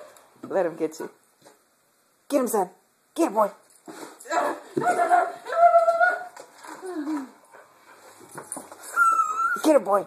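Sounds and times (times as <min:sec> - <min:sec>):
dog whining: 0:08.8 - 0:09.8.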